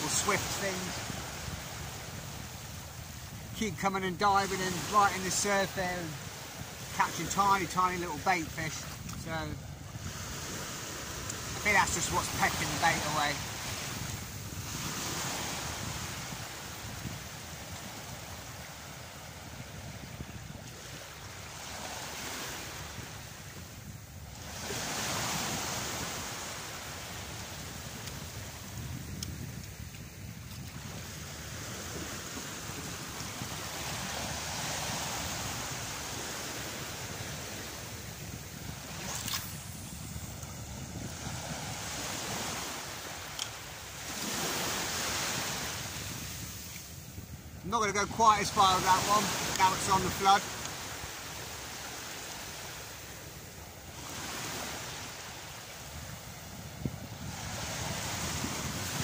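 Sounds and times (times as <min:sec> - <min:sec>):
surf breaking on beach: 0:00.0 - 0:23.7, 0:24.3 - 0:29.6, 0:30.7 - 0:59.0
wind buffeting microphone: 0:00.0 - 0:51.8, 0:52.6 - 0:59.0.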